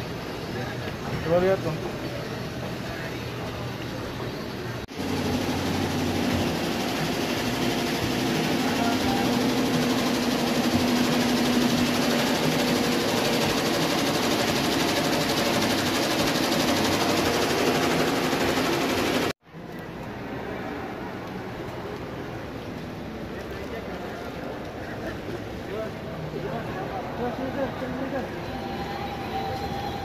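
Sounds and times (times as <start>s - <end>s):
embroidery machine stitching: 4.9s - 19.4s.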